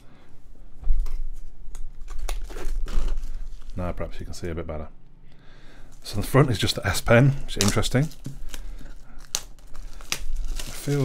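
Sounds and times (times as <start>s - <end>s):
cellophane crinkling and tearing: 1.7s - 4.0s, 5.9s - 11.0s.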